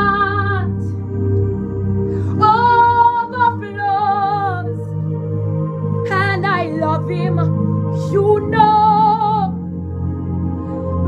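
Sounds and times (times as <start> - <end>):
woman singing gospel song: 0.0 - 0.9, 2.4 - 4.9, 6.0 - 9.6
backing music: 0.0 - 11.0.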